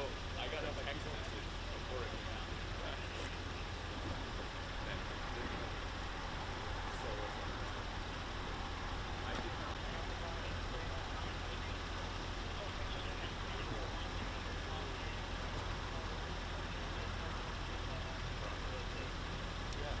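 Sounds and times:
faint voices: 0:00.0 - 0:20.0
vehicle engine idling: 0:00.0 - 0:20.0.

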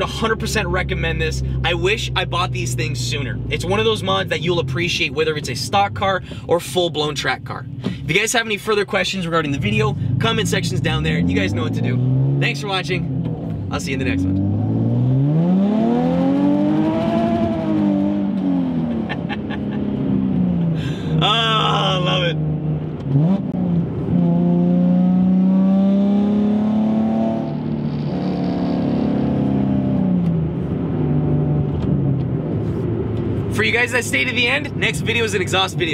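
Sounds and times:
car engine revving through gears: 0:09.7 - 0:20.8, 0:22.4 - 0:33.6.

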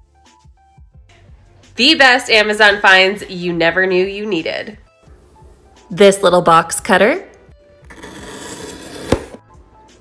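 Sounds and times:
box cutter slitting packing tape: 0:07.9 - 0:09.4.

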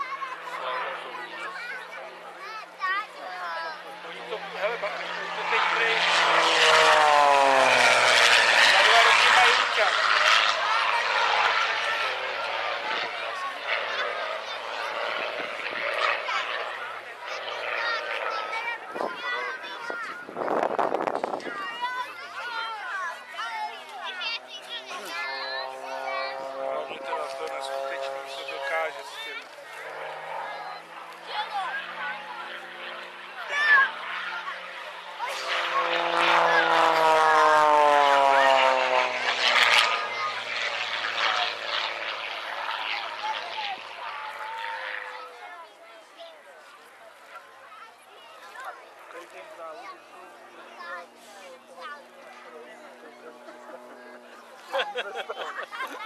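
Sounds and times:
babble of spectators' voices: 0:00.0 - 0:56.0
propeller plane passing by: 0:00.0 - 0:56.0.

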